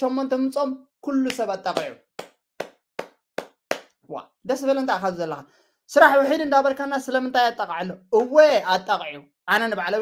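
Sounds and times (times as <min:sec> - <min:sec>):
sharp hand taps: 0:01.3 - 0:04.0.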